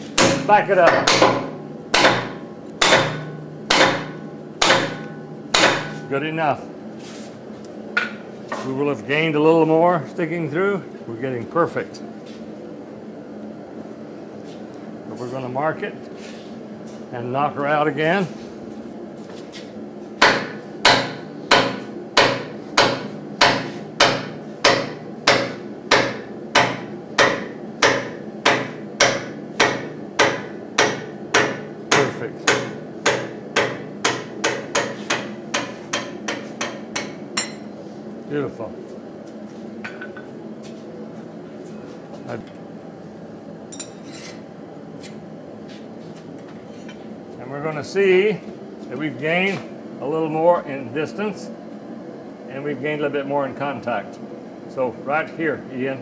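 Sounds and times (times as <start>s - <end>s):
power hammer striking hot steel: 0.0s - 6.1s, 20.2s - 37.7s
steady machine hum: 0.0s - 56.0s.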